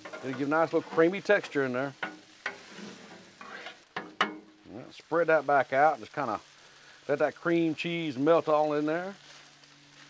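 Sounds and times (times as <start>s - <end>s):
metal spatulas scraping griddle: 0.0s - 3.9s
meat sizzling: 0.0s - 10.0s.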